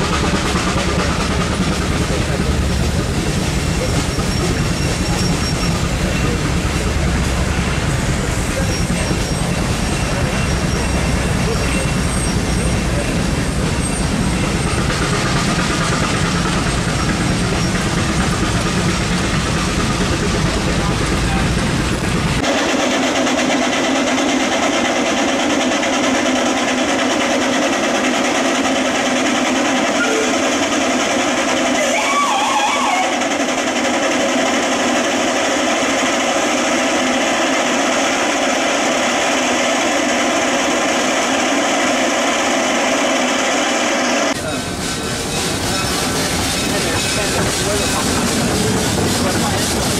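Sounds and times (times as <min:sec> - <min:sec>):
steam traction engines running: 0:00.0 - 0:49.9
crowd chatter: 0:01.8 - 0:17.2, 0:19.9 - 0:22.5, 0:43.7 - 0:49.9.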